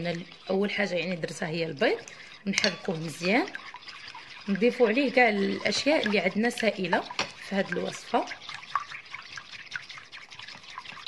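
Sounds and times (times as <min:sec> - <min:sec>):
spoon beating egg: 0:00.0 - 0:11.0
spoon clicking against bowl: 0:02.6 - 0:02.9.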